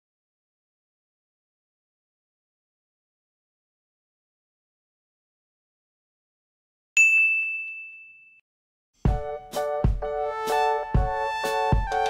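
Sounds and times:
bright ding: 0:07.0 - 0:08.4.

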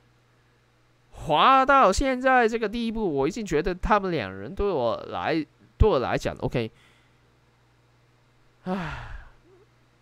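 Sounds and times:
faint steady hum: 0:00.0 - 0:10.0
man sighing: 0:08.6 - 0:09.7.

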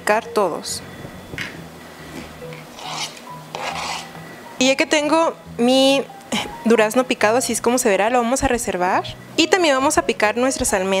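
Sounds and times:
knife scraping cutting board: 0:02.2 - 0:04.2.

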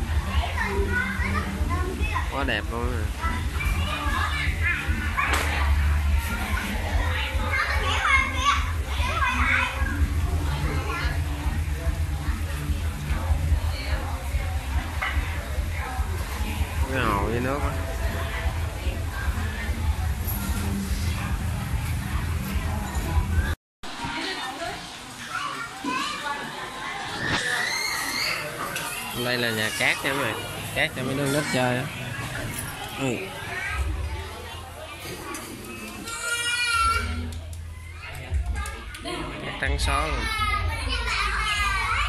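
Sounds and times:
children calling and chattering: 0:00.0 - 0:42.0.

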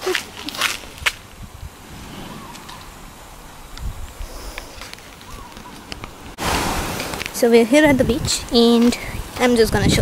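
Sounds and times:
steady background hiss: 0:00.0 - 0:10.0
wind rumbling on microphone: 0:00.0 - 0:10.0
low bump: 0:01.4 - 0:06.4.

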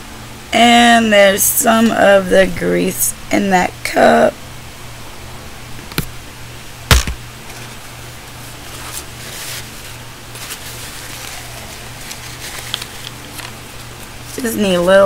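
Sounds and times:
low electrical hum: 0:00.0 - 0:15.0
sharp knock on desk: 0:06.9 - 0:07.2
soft rustling: 0:07.5 - 0:15.0.

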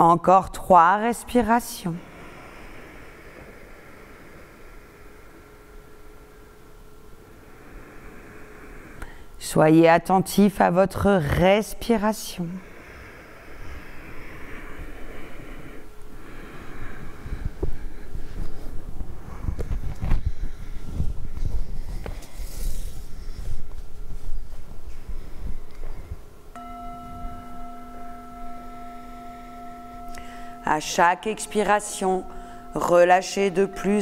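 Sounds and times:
rustling of body movement: 0:17.1 - 0:26.4
singing bowl ringing: 0:26.5 - 0:34.0.

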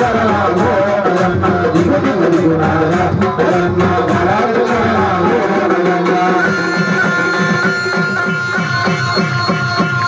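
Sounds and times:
fast hand-drum beat: 0:00.0 - 0:10.0
melody instrument long notes: 0:04.7 - 0:10.0.

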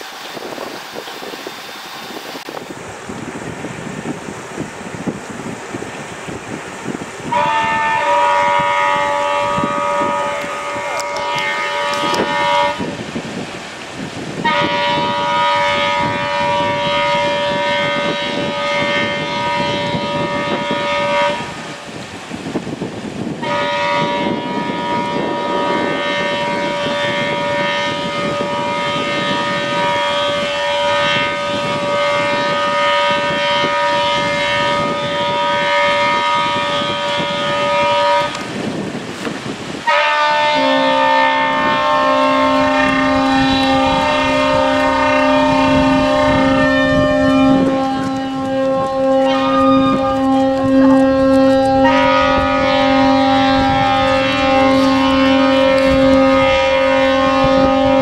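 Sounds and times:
ship horns blasting: 0:06.3 - 0:58.0.

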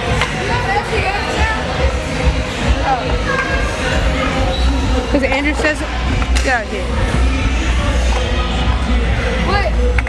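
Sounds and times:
background music with strong bass: 0:00.0 - 0:10.0.

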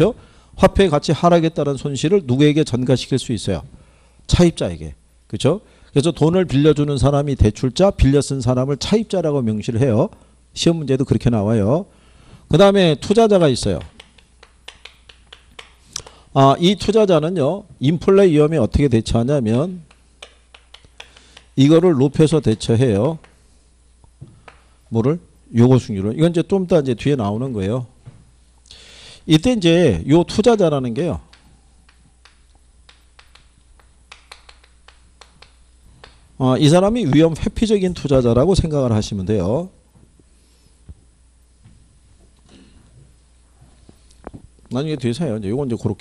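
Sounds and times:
chalk clicking on chalkboard: 0:19.9 - 0:21.5.

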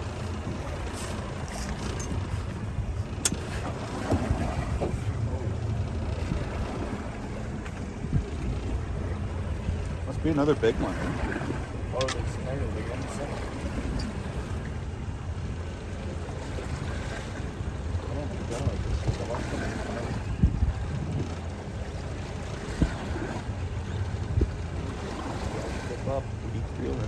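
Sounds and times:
boat motor rumbling: 0:00.0 - 0:27.0
wind on microphone: 0:00.0 - 0:27.0.

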